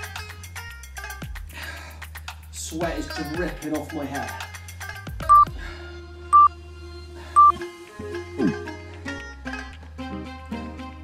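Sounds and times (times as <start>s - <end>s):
background music: 0.0s - 11.0s
short high timer beeps: 5.3s - 5.5s, 7.4s - 7.6s.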